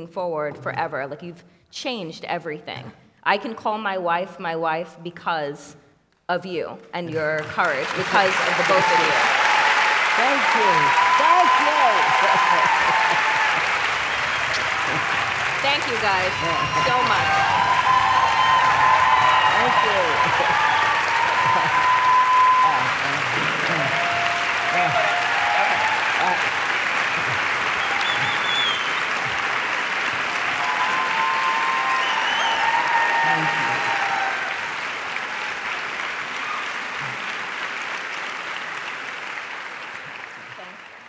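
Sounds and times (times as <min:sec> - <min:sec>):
audience applauding: 0:07.1 - 0:41.0
voices over clapping: 0:07.1 - 0:41.0.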